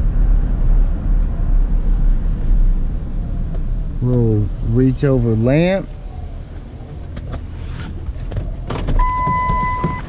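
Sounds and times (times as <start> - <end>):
truck engine and road rumble: 0.0 - 10.0.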